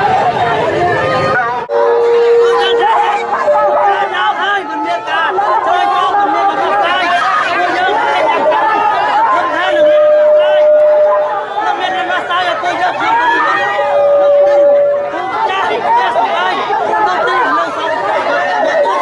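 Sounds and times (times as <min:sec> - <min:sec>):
crowd babble: 0:00.0 - 0:19.0
drawn-out held tone: 0:09.7 - 0:11.7, 0:13.3 - 0:15.5.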